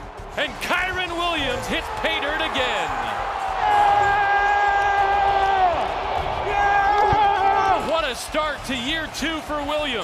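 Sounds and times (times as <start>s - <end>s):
crowd noise: 0.0s - 10.0s.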